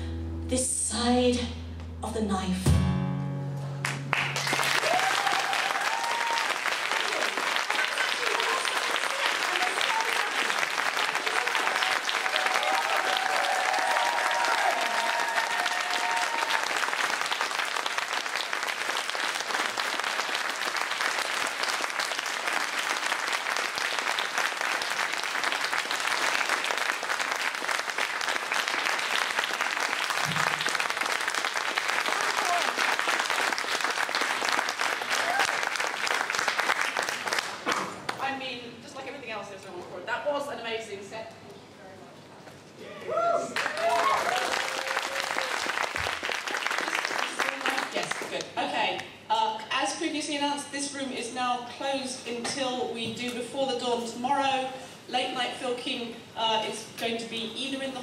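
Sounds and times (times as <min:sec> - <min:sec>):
audience applauding: 0:03.8 - 0:38.2, 0:43.2 - 0:48.5.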